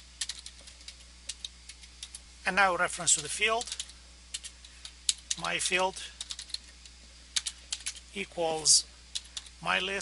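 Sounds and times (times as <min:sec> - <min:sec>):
computer keyboard typing: 0:00.2 - 0:02.2, 0:03.2 - 0:08.0, 0:09.1 - 0:09.6.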